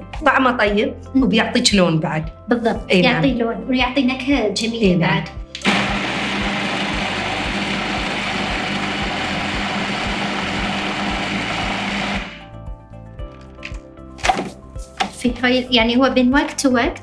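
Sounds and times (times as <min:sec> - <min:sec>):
food processor grinding: 0:05.6 - 0:12.5.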